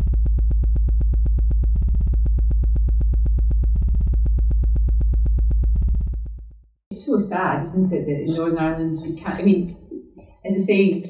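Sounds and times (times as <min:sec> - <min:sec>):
pulsing synthesizer bass drone: 0:00.0 - 0:09.9.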